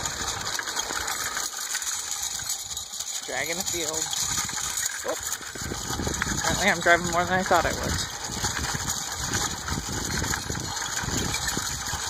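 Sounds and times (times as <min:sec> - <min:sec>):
chain harrow rattling over ground: 0:00.0 - 0:12.0.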